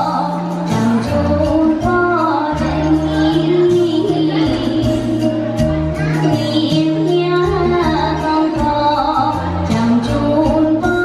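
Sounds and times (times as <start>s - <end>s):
amplified backing music: 0.0s - 11.0s
woman singing into microphone: 0.0s - 11.0s.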